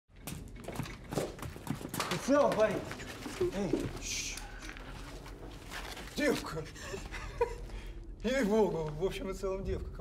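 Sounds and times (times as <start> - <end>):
boot footsteps: 0.1 - 6.5.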